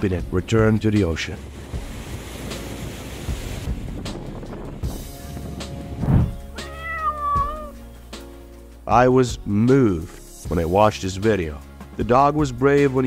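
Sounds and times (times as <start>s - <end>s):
surf: 0.0s - 8.8s
wind: 0.0s - 8.8s
background music: 0.0s - 13.0s
cat meowing: 6.5s - 7.8s.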